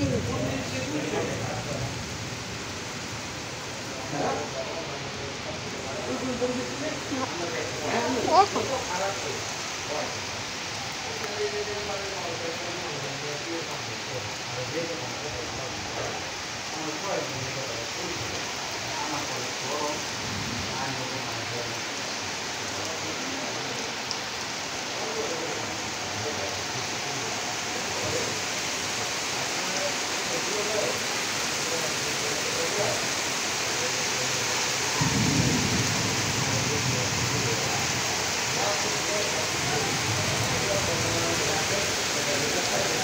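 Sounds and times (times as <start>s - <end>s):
heavy rain pouring: 0.0s - 43.0s.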